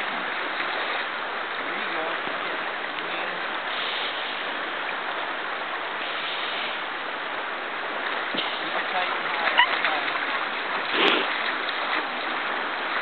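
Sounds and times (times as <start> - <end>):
creek rushing: 0.0 - 13.0.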